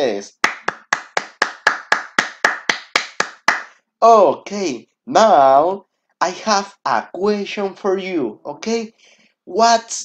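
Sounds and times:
person clapping hands: 0.3 - 3.8.

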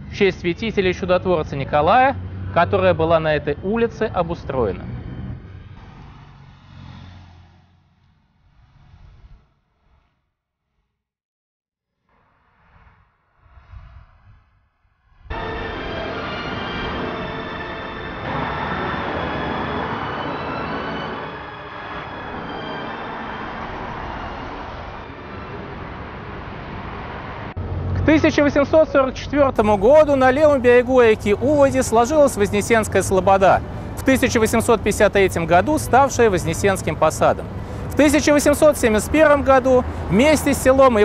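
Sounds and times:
road traffic rumble: 0.0 - 10.1, 15.3 - 41.0.

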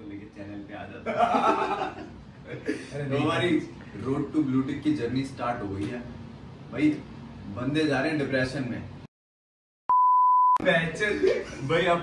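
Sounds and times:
men laughing: 1.0 - 3.0
test tone beep: 9.9 - 10.6.

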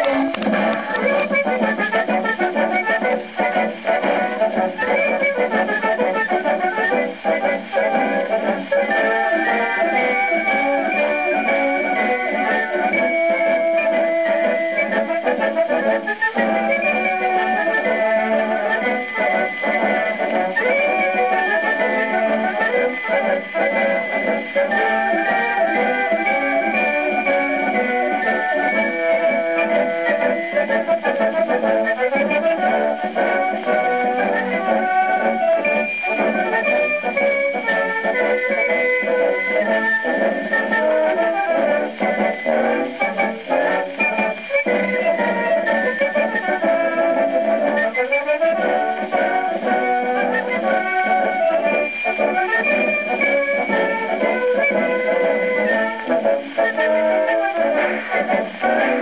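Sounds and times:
military band playing a march: 0.0 - 59.0.

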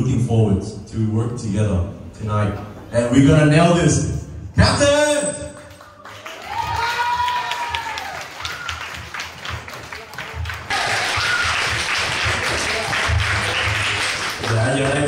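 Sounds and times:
small group applauding: 5.4 - 15.0.

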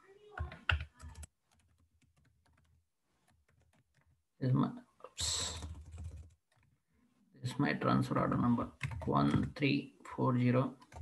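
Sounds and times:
computer keyboard typing: 0.3 - 4.2, 5.2 - 6.8, 8.6 - 9.6.

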